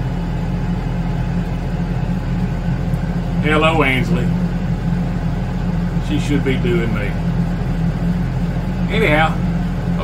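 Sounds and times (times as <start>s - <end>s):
tractor engine running: 0.0s - 10.0s.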